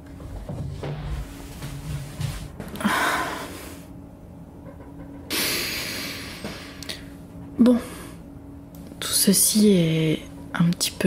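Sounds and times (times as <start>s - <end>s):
faint steady hum: 0.0s - 11.0s
breathy exhale: 2.8s - 3.9s.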